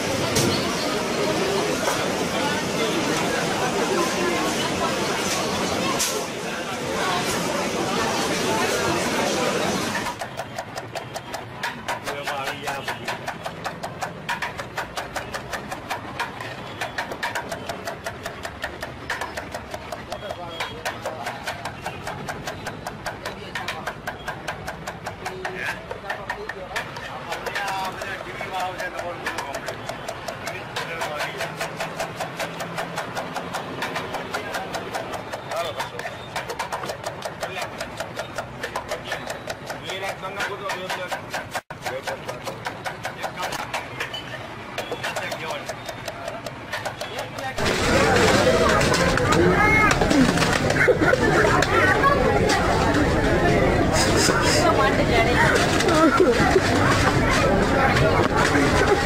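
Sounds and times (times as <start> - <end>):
knife chopping on wooden board: 10.0 - 50.8
voices talking: 33.2 - 59.0.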